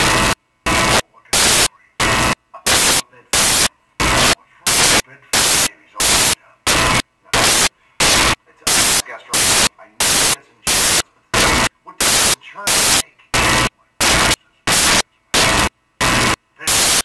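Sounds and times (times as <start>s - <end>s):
loud static hiss bursts: 0.0s - 17.0s.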